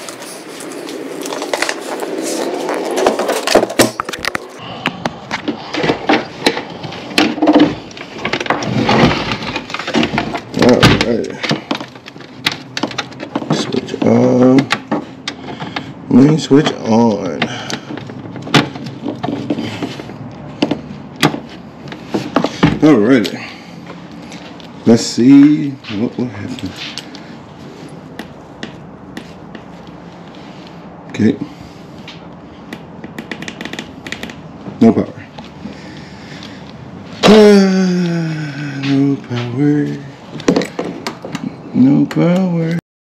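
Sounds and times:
sharp clicks and knocks: 3.0s - 15.9s, 32.1s - 34.4s, 40.3s - 42.4s.

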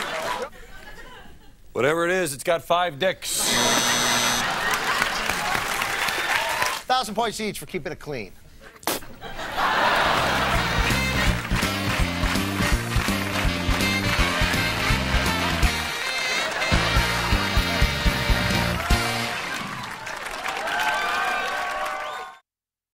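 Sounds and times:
upbeat theme music: 9.9s - 19.9s
stepping bass line: 10.5s - 15.9s.

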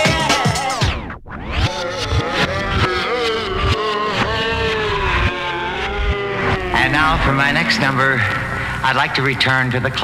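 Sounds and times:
turntable pitch bending down: 0.0s - 10.0s.

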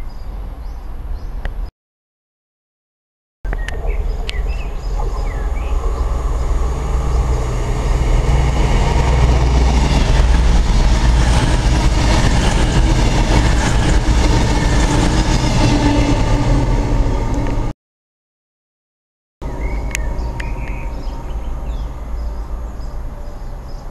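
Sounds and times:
passenger train passing: 3.6s - 17.7s, 19.4s - 23.9s.

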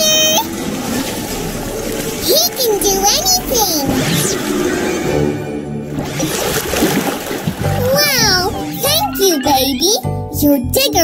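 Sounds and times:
water pouring and splashing: 0.0s - 4.7s, 5.8s - 8.5s.

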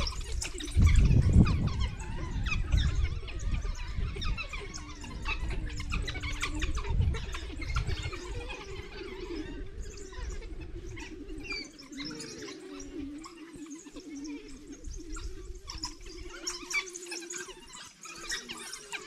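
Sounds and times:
wild dogs chirping: 0.0s - 19.0s.

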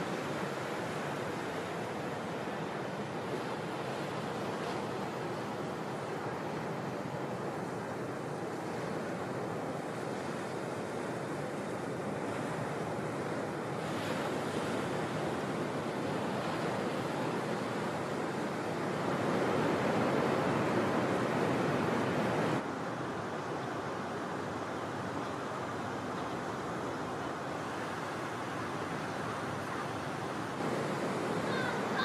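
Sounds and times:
ocean surf breaking: 0.0s - 32.0s.

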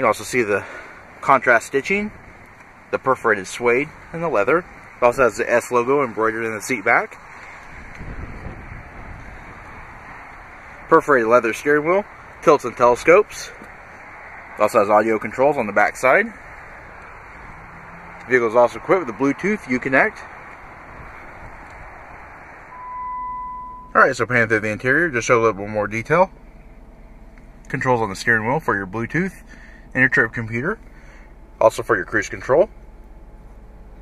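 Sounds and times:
wind on microphone: 7.6s - 10.3s
electronic beep tone: 22.7s - 24.0s.

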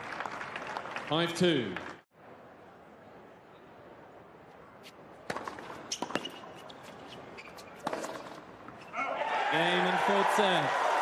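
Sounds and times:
tennis ball hits and bounces: 5.2s - 8.9s.

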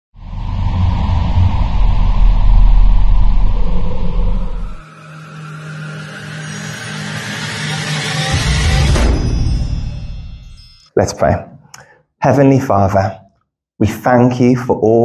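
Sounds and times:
loud deep rumble: 0.1s - 5.0s
low hum: 0.2s - 10.8s
rising whoosh: 0.2s - 10.8s.

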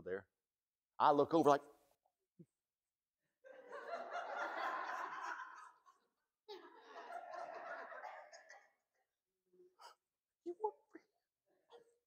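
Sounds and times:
congregation laughing: 3.4s - 8.8s.

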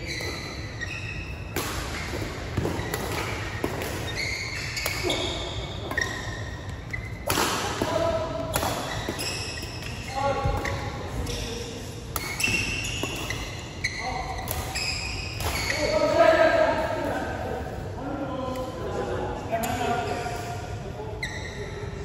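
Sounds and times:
shoes squeaking on floor: 0.0s - 7.3s, 8.8s - 16.0s, 21.2s - 21.8s
racket hitting shuttlecock: 1.5s - 11.4s.

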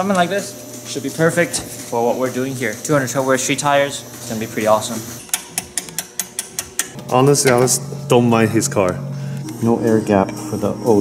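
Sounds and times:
hand ratchet clicking: 5.2s - 7.0s.

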